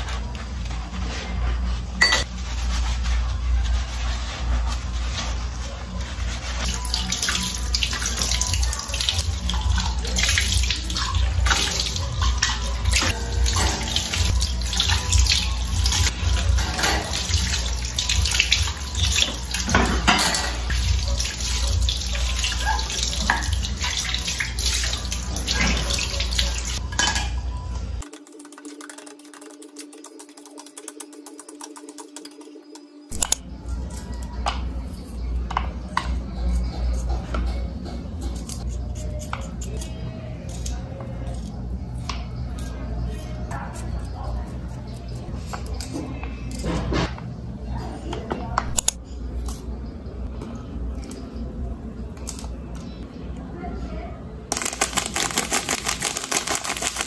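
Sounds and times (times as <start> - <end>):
dishware clinking against sink: 2.0 - 2.3, 6.7 - 33.3.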